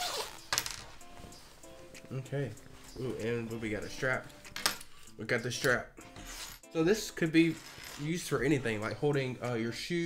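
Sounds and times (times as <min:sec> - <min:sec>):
zipper rasp: 0:00.0 - 0:00.5.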